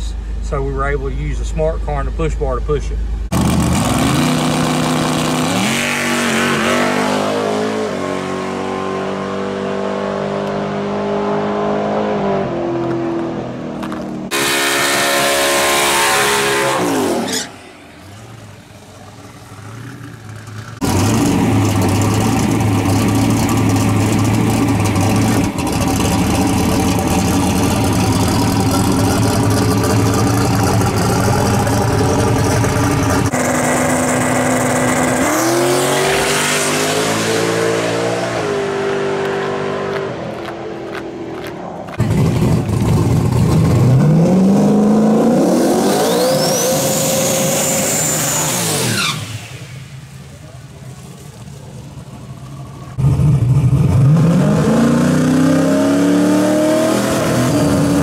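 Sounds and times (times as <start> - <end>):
race car engine revving: 3.3 - 17.6, 19.3 - 49.8, 52.7 - 58.0.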